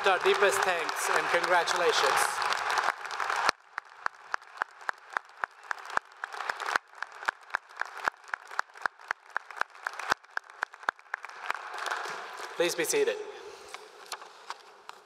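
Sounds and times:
crowd applause: 0.0s - 13.0s
scattered hand claps: 0.0s - 13.0s.

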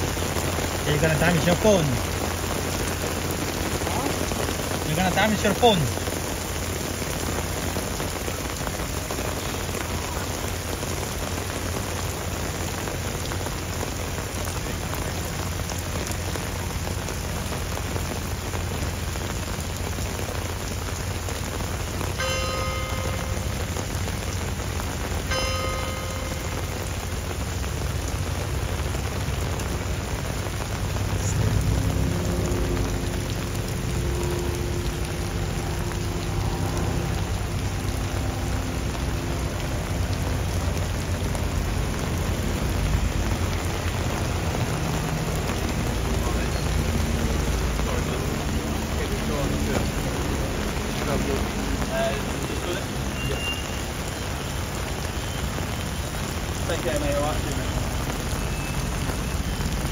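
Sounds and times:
heavy rain on stone paving: 0.0s - 59.9s.

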